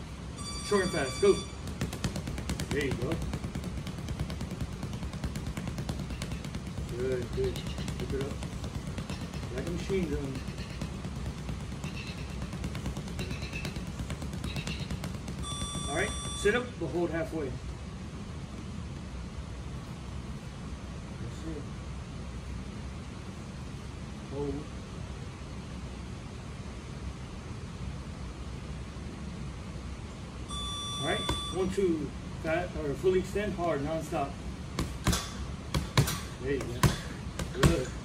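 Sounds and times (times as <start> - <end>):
low background hum: 0.0 - 38.0
electronic timer beep: 0.4 - 1.6, 15.4 - 16.7, 30.5 - 31.8
punches thudding into heavy bag: 1.6 - 16.4, 34.8 - 38.0.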